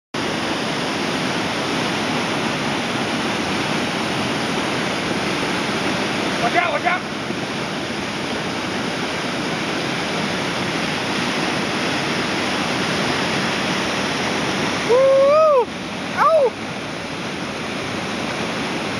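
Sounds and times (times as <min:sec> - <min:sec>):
whitewater rapid rushing: 0:00.2 - 0:18.9
person whooping: 0:14.8 - 0:16.6.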